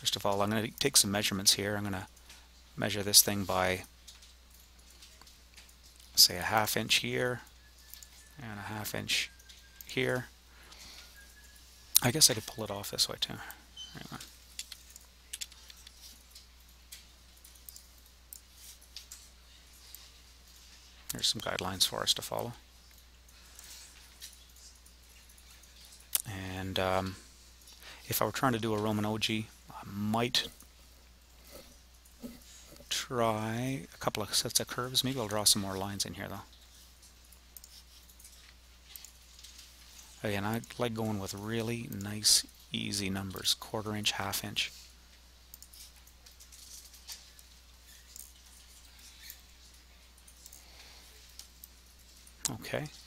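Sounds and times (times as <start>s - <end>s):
low steady hum: 0.0s - 53.0s
computer mouse clicks: 14.5s - 19.2s.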